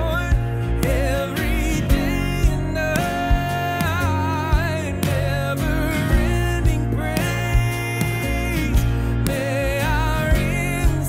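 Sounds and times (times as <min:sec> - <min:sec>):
acoustic guitar: 0:00.0 - 0:11.0
band with steady low beat: 0:00.0 - 0:11.0
men singing together: 0:00.0 - 0:11.0.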